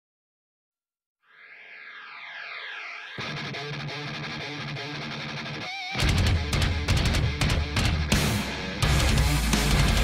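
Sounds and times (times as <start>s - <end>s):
heavy rock song with guitar: 3.2s - 10.0s.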